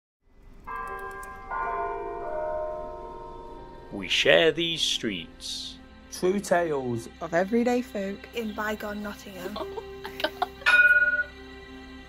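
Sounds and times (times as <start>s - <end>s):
tram bell ringing: 0.7s - 5.8s, 10.4s - 11.6s.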